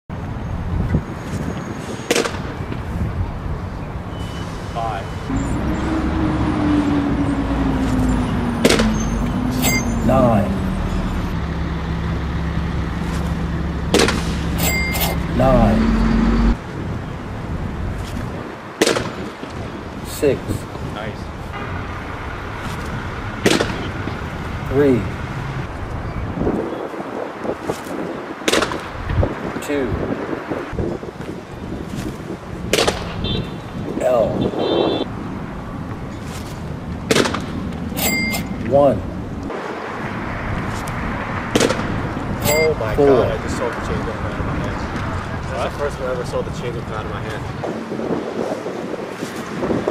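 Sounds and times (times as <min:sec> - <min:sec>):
city background noise: 0:00.0 - 0:49.9
wind: 0:00.0 - 0:49.9
vehicle engine hum: 0:02.5 - 0:18.4, 0:20.7 - 0:33.9
short electronic beep: 0:08.1 - 0:11.4, 0:14.6 - 0:16.6, 0:38.0 - 0:38.6, 0:42.4 - 0:42.8
sharp bang: 0:08.6 - 0:10.0, 0:13.9 - 0:15.4.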